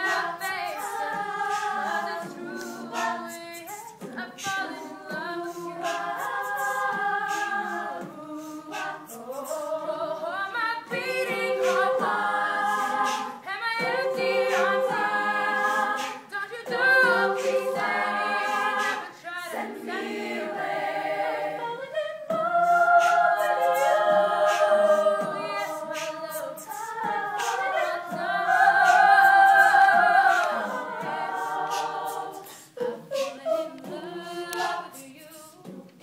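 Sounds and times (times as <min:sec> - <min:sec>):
women singing in close harmony: 0:00.0 - 0:36.0
vocal percussion clicks: 0:02.6 - 0:09.6.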